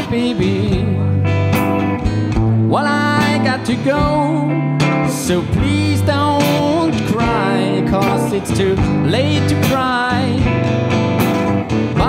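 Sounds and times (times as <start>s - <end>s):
person singing: 0.0s - 1.5s, 2.6s - 10.8s
bass line: 0.0s - 12.0s
blues guitar picking: 0.0s - 12.0s.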